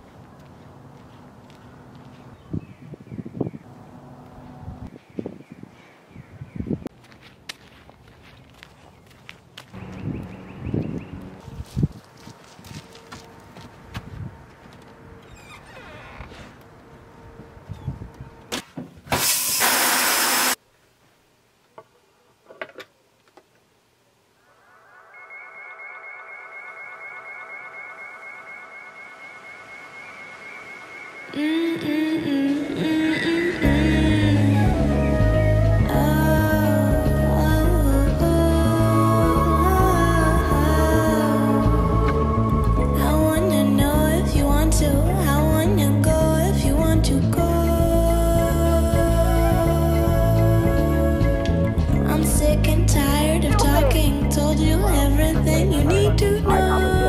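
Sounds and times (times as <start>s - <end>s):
steady droning tone: 24.4s - 57.0s.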